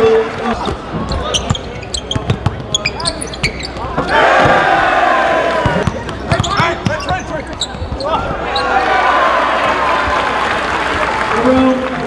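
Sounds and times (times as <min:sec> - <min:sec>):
shoe squeaks on court: 0:00.5 - 0:04.2, 0:05.6 - 0:08.7
basketball bouncing: 0:00.6 - 0:04.8, 0:05.6 - 0:08.4
crowd yelling: 0:03.9 - 0:05.9, 0:08.0 - 0:12.0.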